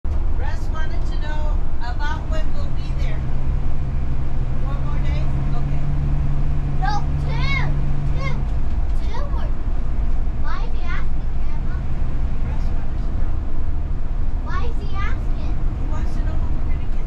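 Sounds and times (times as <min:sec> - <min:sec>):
road and engine rumble: 0:00.0 - 0:17.0.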